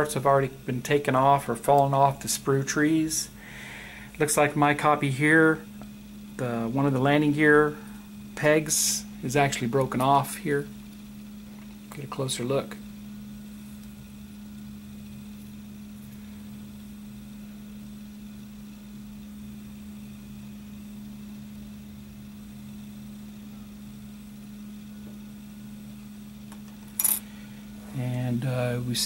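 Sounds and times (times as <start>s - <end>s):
low room hum: 0.0s - 29.0s.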